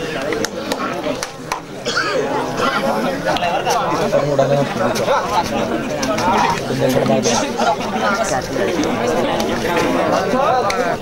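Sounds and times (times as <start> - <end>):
crowd talking and calling out: 0.0 - 11.0.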